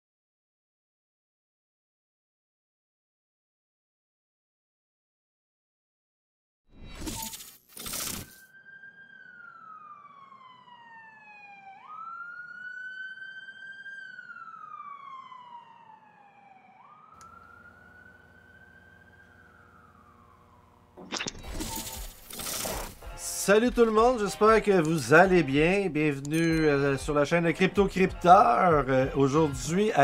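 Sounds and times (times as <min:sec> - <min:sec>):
siren-like wailing tone: 0:06.9 - 0:25.7.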